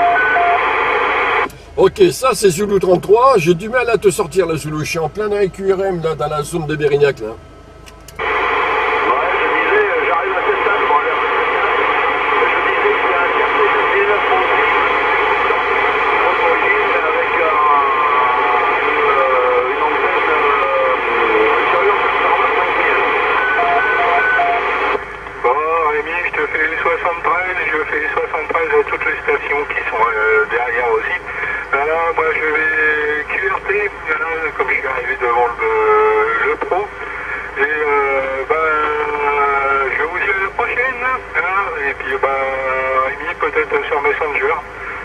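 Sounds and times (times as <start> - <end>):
radio static hiss: 0.0 - 7.3, 8.2 - 45.0
voice over radio: 0.0 - 7.4, 8.2 - 45.0.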